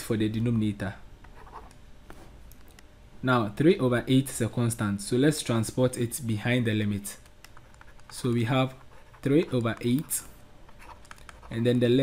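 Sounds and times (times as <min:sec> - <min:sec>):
stylus scratching on tablet screen: 0:01.3 - 0:01.7, 0:07.5 - 0:12.0.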